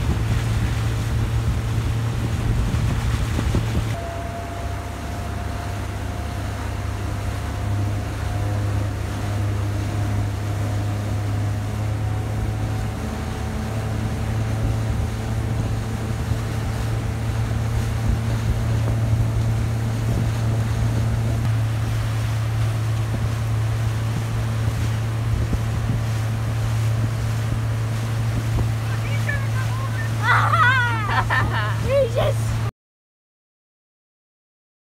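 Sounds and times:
wind on microphone: 0.0s - 5.5s, 6.4s - 30.2s
boat wake churning: 0.0s - 32.7s
motorboat engine droning: 0.0s - 32.7s.

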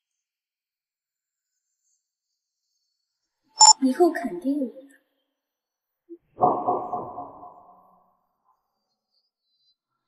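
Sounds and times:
short tone: 3.6s - 3.8s.

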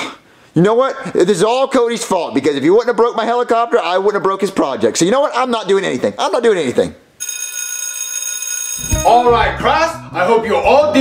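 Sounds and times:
electric school bell ringing: 7.2s - 9.4s.

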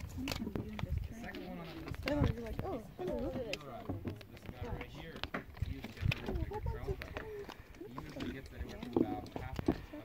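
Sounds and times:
indistinct talk: 0.0s - 10.0s.

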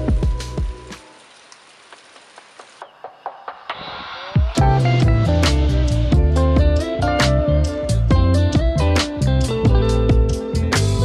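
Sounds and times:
water dripping into a pool: 0.2s - 2.9s
guitar music: 4.6s - 11.0s.

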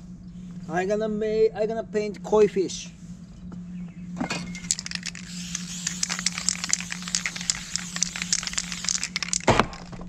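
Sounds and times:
spray paint can rattling: 4.5s - 10.0s.

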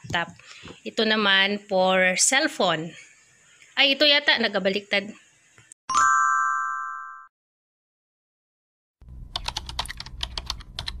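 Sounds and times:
computer keyboard typing: 9.4s - 11.0s.

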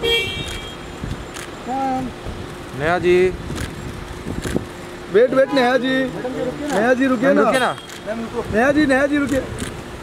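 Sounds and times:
car engine rumbling: 0.0s - 10.0s.

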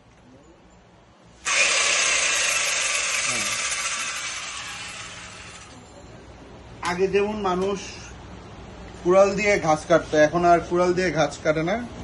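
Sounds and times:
electric chainsaw running: 1.4s - 5.8s.

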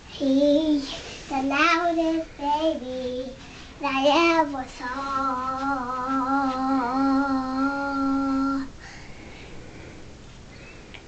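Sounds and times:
girl singing a long note: 0.2s - 8.8s.

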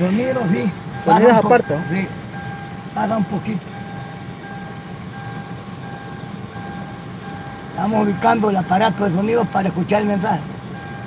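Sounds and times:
electronic beep in car: 0.2s - 10.0s, 10.7s - 11.0s.

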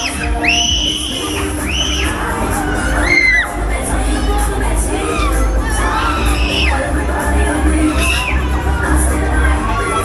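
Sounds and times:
fairground ride music: 0.0s - 10.0s.

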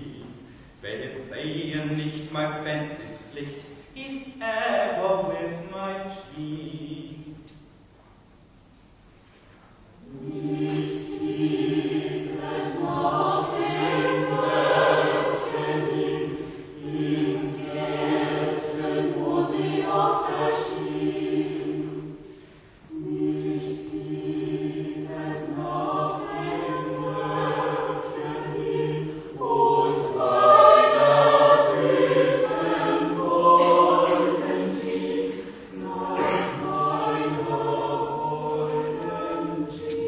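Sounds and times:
mixed choir singing in parts: 4.4s - 7.4s, 10.0s - 40.0s.

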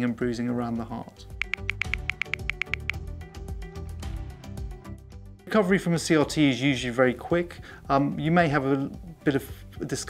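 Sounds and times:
quick ticking pulse: 1.4s - 3.0s.

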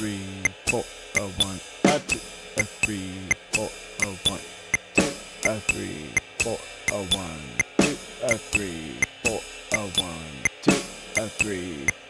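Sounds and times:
hi-hat: 0.0s - 12.0s
ride cymbal pattern: 0.0s - 12.0s
snare drum hits: 1.9s - 2.2s, 4.9s - 5.2s, 7.8s - 8.0s, 10.7s - 11.0s.

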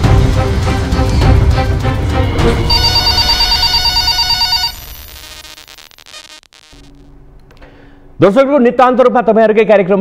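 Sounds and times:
title music: 0.1s - 4.3s
electronic telephone ring: 2.7s - 6.3s.

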